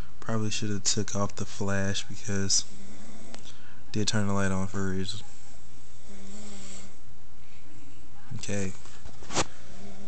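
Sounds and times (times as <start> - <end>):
low pitched hum: 0.0 - 10.0.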